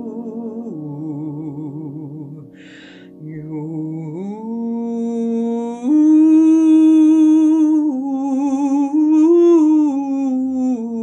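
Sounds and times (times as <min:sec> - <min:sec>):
soft drone chord: 0:00.0 - 0:10.2
woman singing wordless melody: 0:00.0 - 0:11.0.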